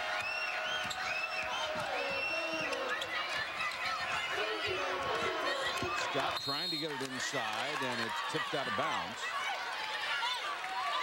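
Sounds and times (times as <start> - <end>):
crowd murmuring: 1.4 - 9.4.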